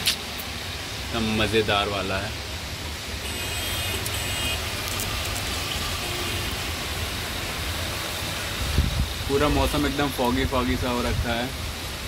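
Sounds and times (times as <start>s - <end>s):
heavy rain on road and trees: 0.0s - 12.0s.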